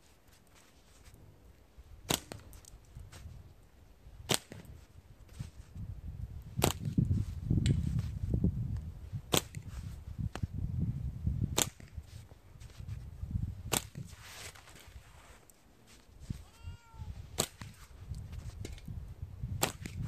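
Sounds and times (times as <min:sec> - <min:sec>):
slingshot shots cracking: 0:02.0 - 0:02.8, 0:04.2 - 0:04.7, 0:06.6 - 0:07.0, 0:09.3 - 0:09.7, 0:11.5 - 0:12.0, 0:13.7 - 0:14.2, 0:17.4 - 0:17.8, 0:19.6 - 0:20.0.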